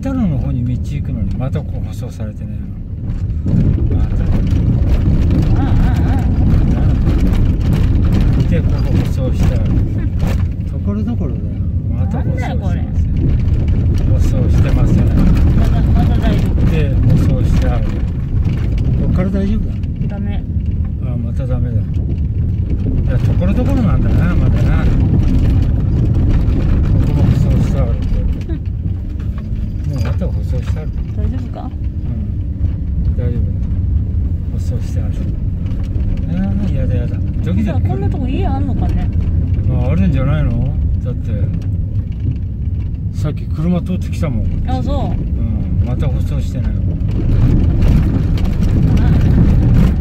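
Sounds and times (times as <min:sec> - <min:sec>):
car driving on gravel: 0:00.0 - 0:50.0.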